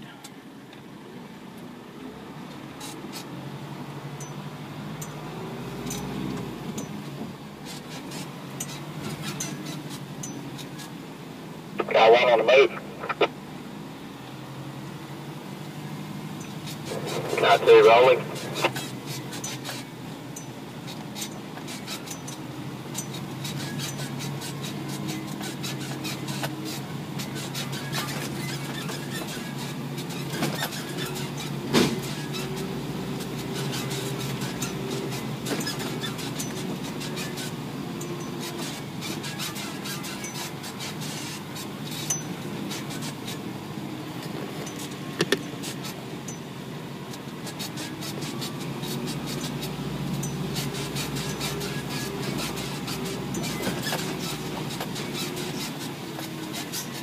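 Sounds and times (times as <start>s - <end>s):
truck diesel engine running: 0.0s - 57.0s
clicks and rattles from truck: 4.2s - 11.1s, 16.3s - 57.0s.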